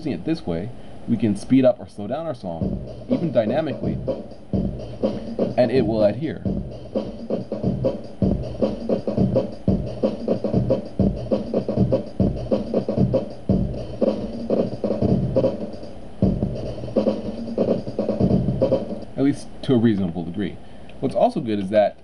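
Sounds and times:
drum loop: 2.1 - 20.3.

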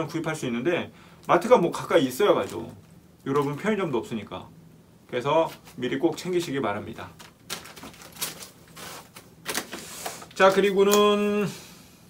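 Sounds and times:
plastic wrapper crinkling: 7.0 - 11.1.

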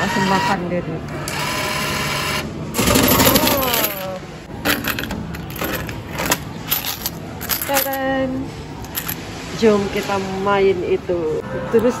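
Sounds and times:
coins clattering into tray: 2.8 - 8.0, 8.8 - 9.2.

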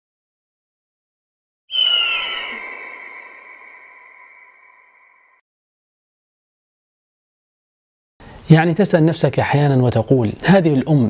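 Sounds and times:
ringing sound effect hit: 1.7 - 5.4.

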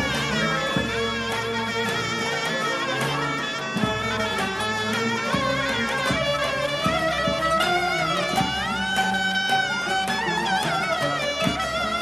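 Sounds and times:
slow drum beats: 0.0 - 2.1, 3.7 - 12.0
reedy wind instrument melody: 0.0 - 12.0.

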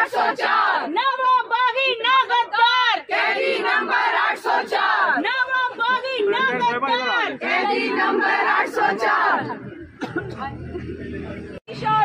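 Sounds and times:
women shouting slogan together: 0.0 - 3.9, 4.7 - 8.2.

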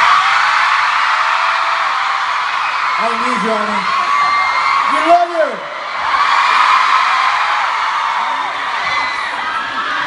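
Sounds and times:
crowd screaming and cheering: 0.0 - 10.0.

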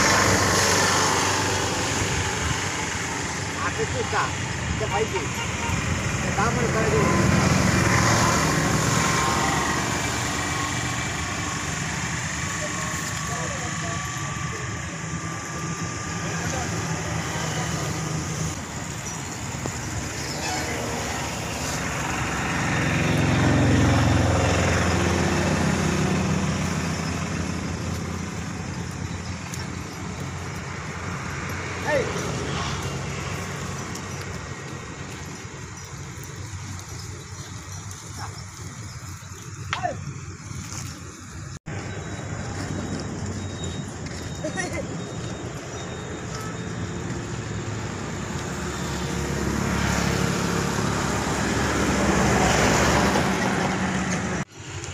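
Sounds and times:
outdoor noise: 0.0 - 54.9.

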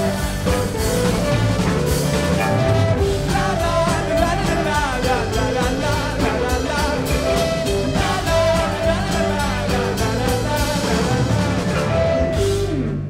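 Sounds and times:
voices singing along: 0.0 - 12.7
live rock band playing: 0.0 - 13.0.

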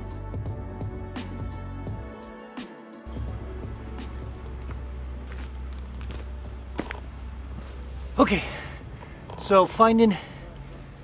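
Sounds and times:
steady low rumble: 3.1 - 9.6
footsteps crunching on stony dirt: 3.1 - 9.8.

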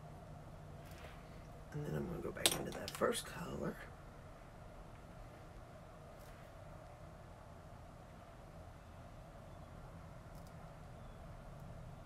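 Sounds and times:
makeup items clicking and clinking: 2.4 - 3.1.

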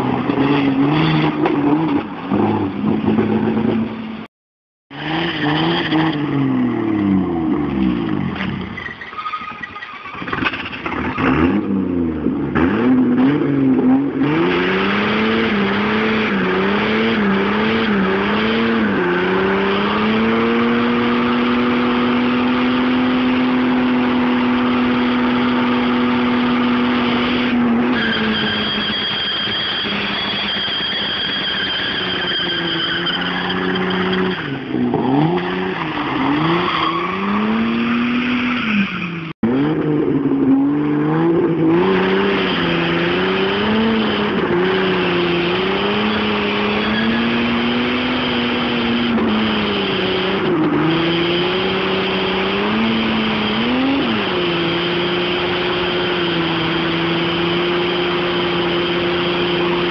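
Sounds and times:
car engine revving hard: 4.9 - 8.2, 10.3 - 32.4, 33.2 - 59.9.

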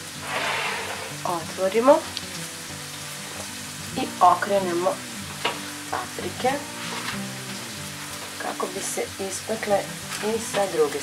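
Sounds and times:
food sizzling: 0.0 - 11.0.

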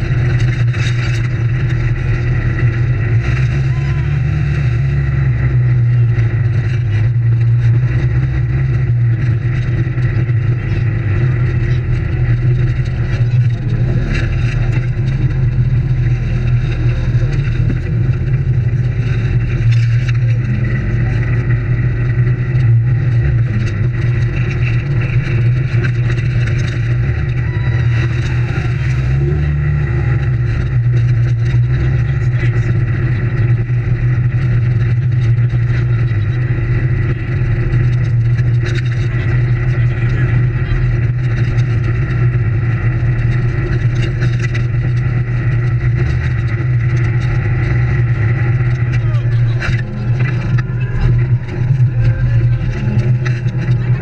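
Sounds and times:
off-road vehicle engine running: 0.0 - 54.0.

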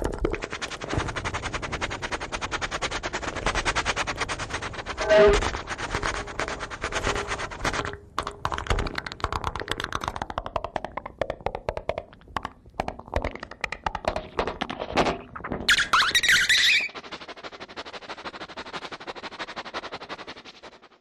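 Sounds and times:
rapid electronic clicks and pops: 7.8 - 15.5.

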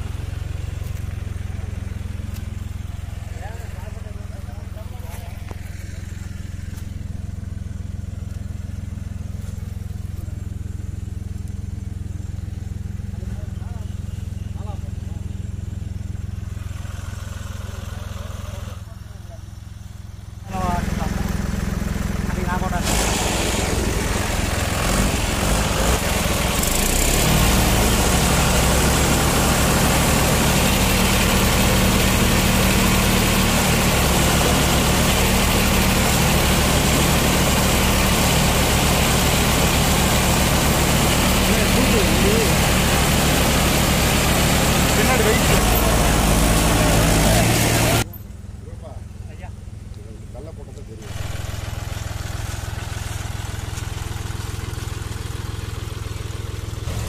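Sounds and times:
tractor diesel engine running: 0.0 - 57.0
broad rushing noise: 22.7 - 27.4.

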